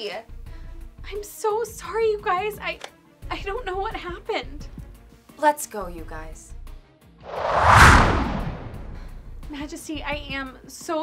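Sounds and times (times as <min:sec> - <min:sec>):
whoosh sound effect: 0:07.3 - 0:09.2
deep low rumble: 0:07.3 - 0:09.3.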